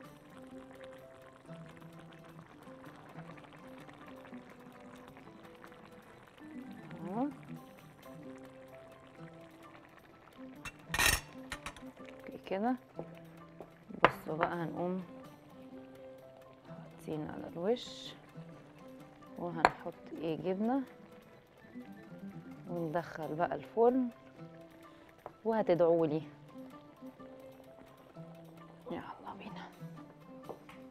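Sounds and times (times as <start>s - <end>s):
soft background music: 0.0s - 30.9s
metal kitchen utensil clink: 10.7s - 11.8s.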